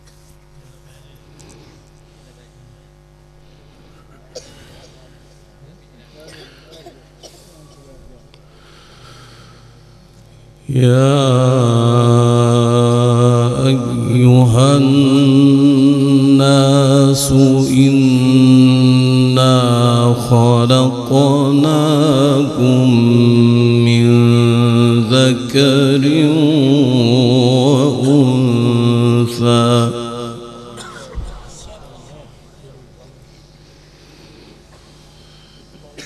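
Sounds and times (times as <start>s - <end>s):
man reciting melodically: 10.6s - 33.2s.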